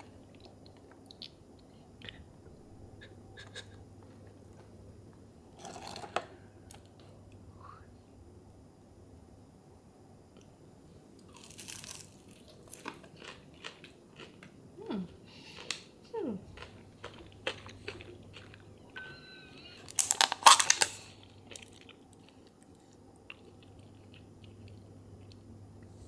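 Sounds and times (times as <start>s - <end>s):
crunchy chewing: 11.2s - 14.6s, 15.3s - 18.9s, 19.9s - 26.0s.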